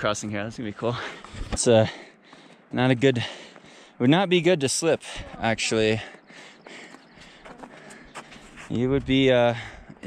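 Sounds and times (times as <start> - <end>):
footsteps on snow: 5.4 - 10.0.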